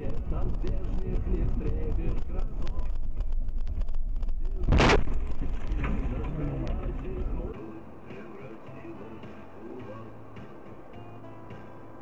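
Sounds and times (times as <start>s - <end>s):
road and engine noise: 0.0s - 12.0s.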